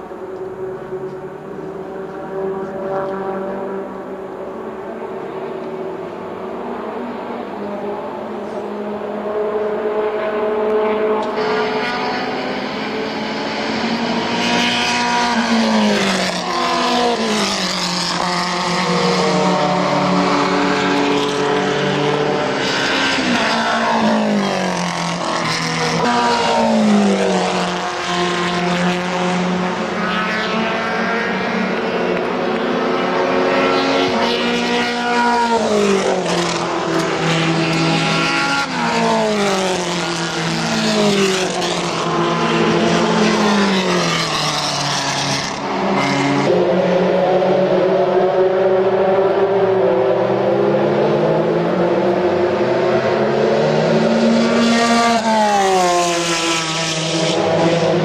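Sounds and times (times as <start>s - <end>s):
race car engines passing: 0.0s - 58.0s.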